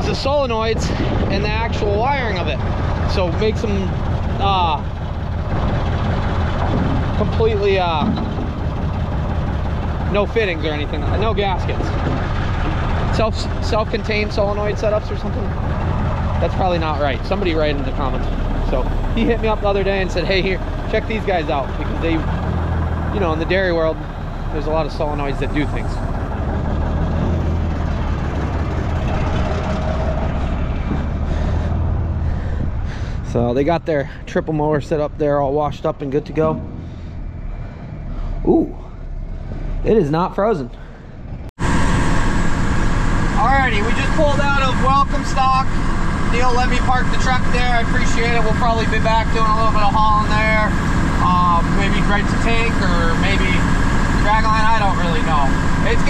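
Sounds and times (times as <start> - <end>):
road and wind noise: 0.0 - 56.0
truck engine idling: 0.0 - 56.0.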